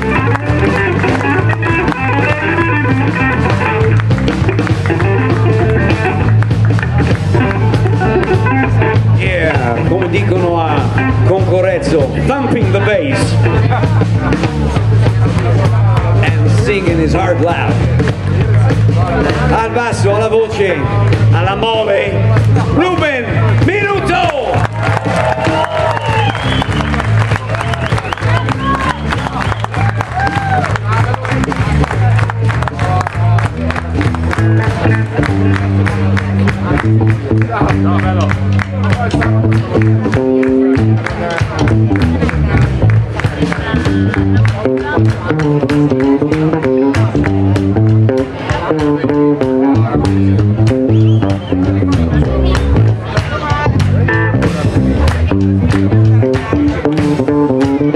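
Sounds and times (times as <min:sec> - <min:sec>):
bass line: 0:00.0 - 0:57.9
drums: 0:00.0 - 0:57.9
electric guitars: 0:00.0 - 0:57.9
live blues band playing: 0:00.0 - 0:57.9.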